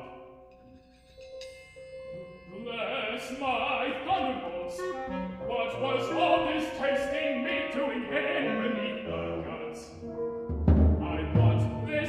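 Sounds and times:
singing voices: 0:02.5 - 0:10.0, 0:11.0 - 0:12.0
piano and percussion: 0:10.0 - 0:12.0.

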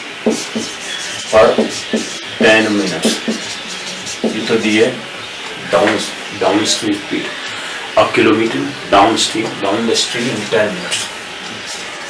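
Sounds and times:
marker squeaking on whiteboard: 0:00.0 - 0:06.2
person speaking: 0:00.3 - 0:11.8.

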